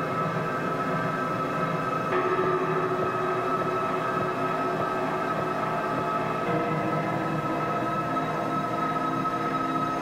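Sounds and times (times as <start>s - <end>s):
ambient drone music: 0.0s - 10.0s.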